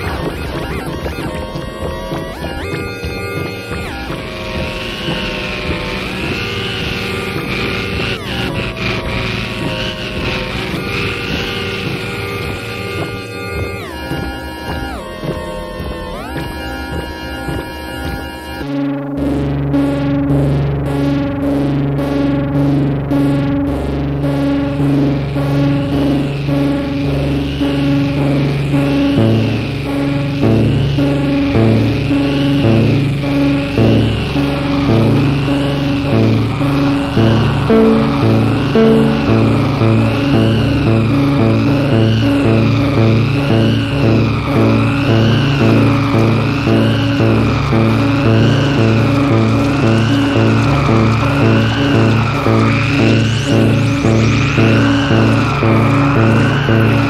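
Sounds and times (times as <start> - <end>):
layered held synth tones: 0.0 - 57.0
pulsing bass pattern with beat: 0.0 - 57.0.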